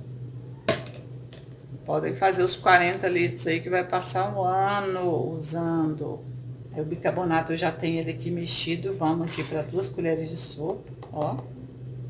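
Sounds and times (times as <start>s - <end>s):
faint background hum: 0.0s - 12.0s
woman speaking: 1.9s - 11.6s.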